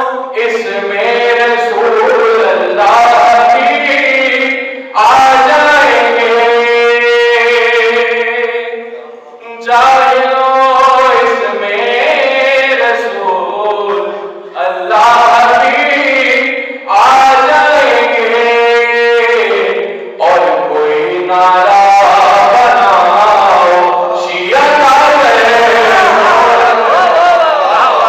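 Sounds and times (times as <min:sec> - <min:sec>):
young man chanting into microphone: 0:00.0 - 0:28.0.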